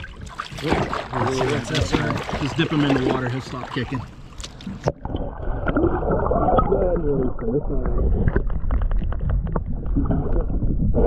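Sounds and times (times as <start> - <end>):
water splashing: 0.0 - 10.6
low underwater rumble: 0.0 - 11.0.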